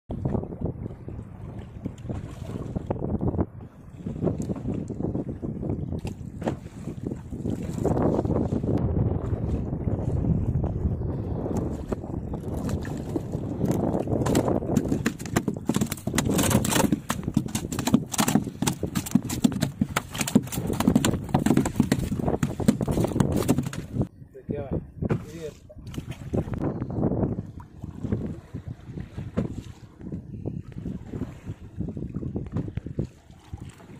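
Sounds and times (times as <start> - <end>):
wind buffeting microphone: 0.1 - 33.9
fish flapping on deck: 12.5 - 24.1.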